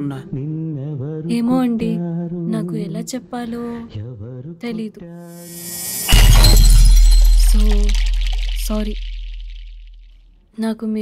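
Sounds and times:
crash with glass shattering: 0:05.4 - 0:10.0
deep ringing boom: 0:05.5 - 0:10.0.

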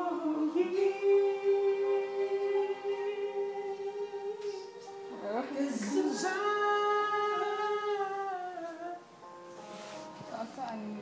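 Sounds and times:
person singing a slow ballad: 0:00.0 - 0:09.4
music: 0:00.0 - 0:11.0.

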